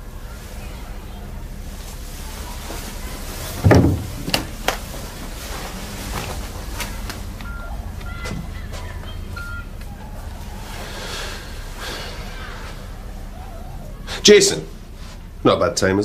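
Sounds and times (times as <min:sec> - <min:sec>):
low steady hum: 0:00.0 - 0:16.0
heavy thump: 0:03.6 - 0:04.5
short electronic beeps: 0:09.3 - 0:09.7.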